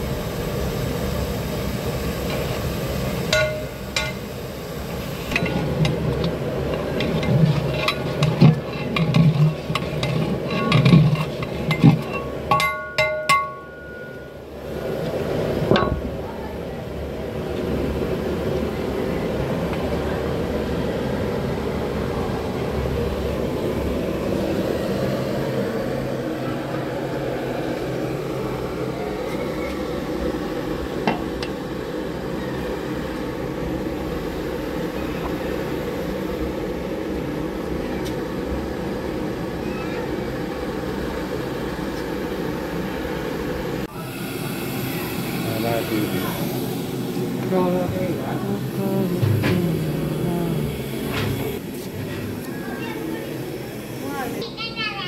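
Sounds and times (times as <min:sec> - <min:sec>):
gas burner firing: 0:00.0 - 0:16.4, 0:17.1 - 0:54.8
indistinct voices: 0:43.9 - 0:55.0.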